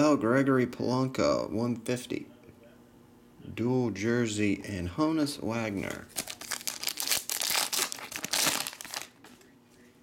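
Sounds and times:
foil wrapper crinkling: 0:05.8 - 0:09.5.

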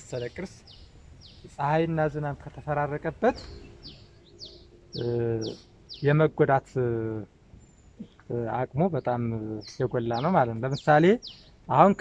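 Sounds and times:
man's voice holding a syllable: 0:00.0 - 0:00.6, 0:01.5 - 0:03.5, 0:04.9 - 0:07.3, 0:08.3 - 0:12.0
small bird chirping: 0:00.0 - 0:06.4, 0:07.0 - 0:12.0.

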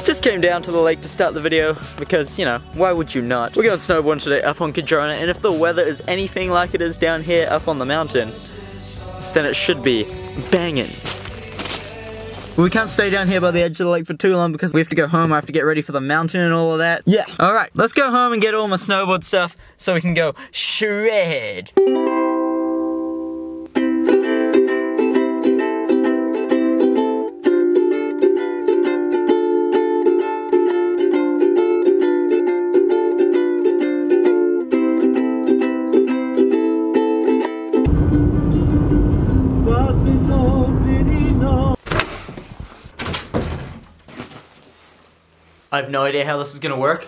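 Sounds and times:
ukulele strumming chords: 0:00.0 - 0:13.6, 0:21.7 - 0:41.8
loud rushing noise: 0:37.9 - 0:41.8.

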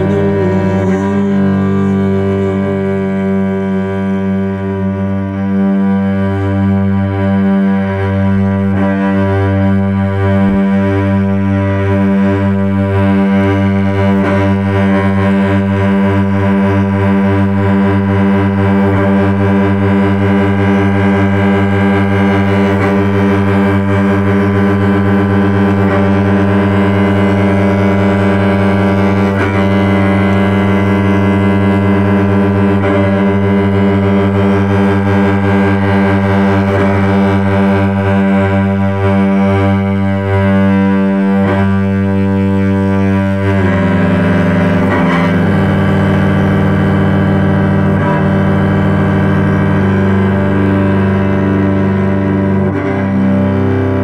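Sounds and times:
bowed cello low notes: 0:00.0 - 0:54.0.

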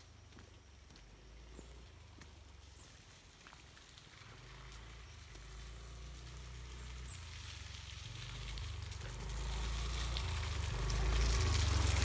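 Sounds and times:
motor scooter engine hum: 0:04.2 - 0:12.0.

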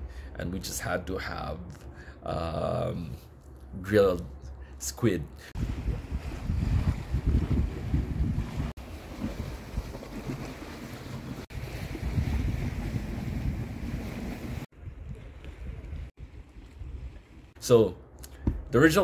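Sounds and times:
gusty wind on microphone: 0:05.5 - 0:10.4, 0:11.4 - 0:17.6
sea waves washing: 0:05.5 - 0:16.5.

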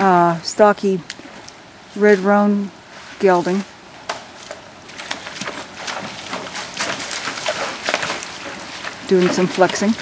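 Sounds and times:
hooves splashing in creek: 0:00.0 - 0:10.0.

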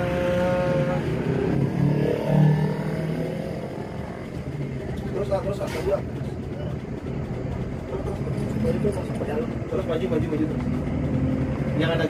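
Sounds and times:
vehicle engine hum: 0:00.0 - 0:12.0.

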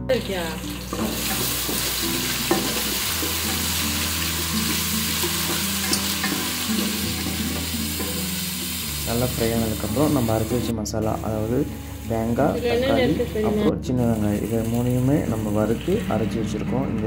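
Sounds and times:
food sizzling in hot oil: 0:00.0 - 0:16.5.

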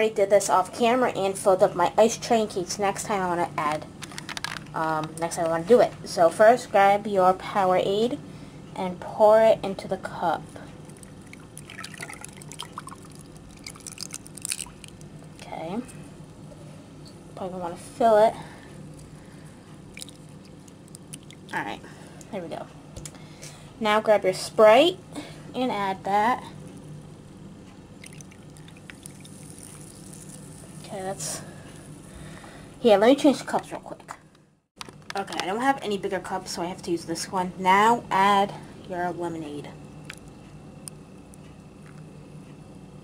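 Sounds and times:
fizz crackling: 0:10.8 - 0:15.4, 0:17.8 - 0:22.2, 0:27.9 - 0:32.4
ice clicking and popping: 0:10.9 - 0:15.1, 0:20.0 - 0:21.6, 0:28.0 - 0:30.6
liquid pouring over ice: 0:10.9 - 0:15.1, 0:20.0 - 0:21.6, 0:28.0 - 0:30.7.

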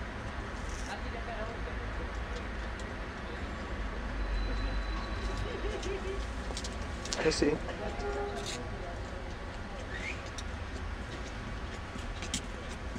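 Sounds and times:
low street rumble: 0:00.0 - 0:12.9.

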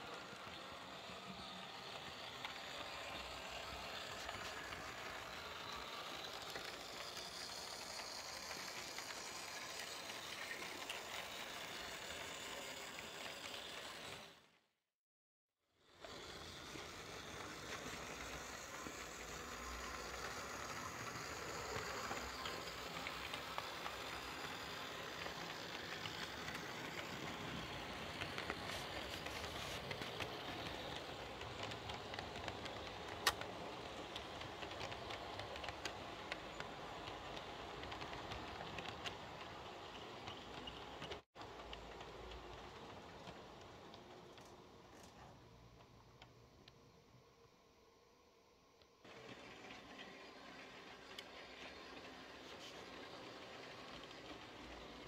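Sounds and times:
wheels clicking over rail joints: 0:00.0 - 0:14.4, 0:16.0 - 0:46.3
model train rolling hiss: 0:00.0 - 0:14.5, 0:15.8 - 0:45.5, 0:49.1 - 0:55.0.

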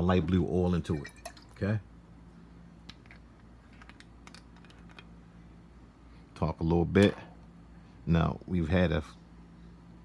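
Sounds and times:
low steady hum: 0:00.0 - 0:10.0
glass bottles clicking and tapping: 0:00.9 - 0:01.5.

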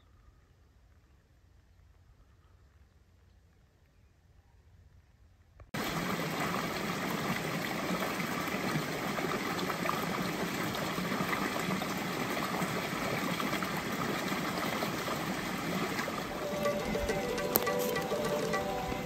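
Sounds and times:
creek running over rocks: 0:05.8 - 0:19.0.

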